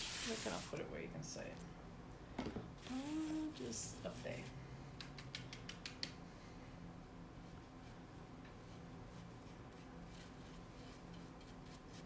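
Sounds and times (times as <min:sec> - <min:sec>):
faint room hum: 0:00.0 - 0:12.0.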